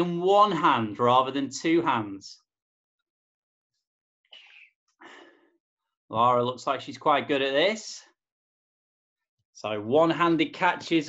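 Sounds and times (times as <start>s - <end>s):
person exhaling sharply: 4.4s - 5.4s.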